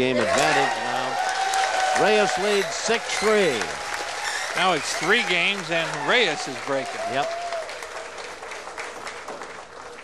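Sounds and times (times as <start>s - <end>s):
audience applauding: 0.0s - 10.0s.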